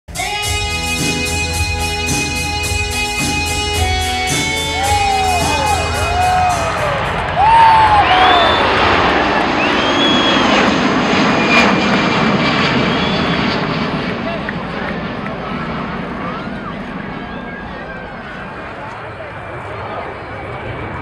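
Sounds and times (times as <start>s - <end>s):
jet aircraft rumble flying past: 5.2s - 21.0s.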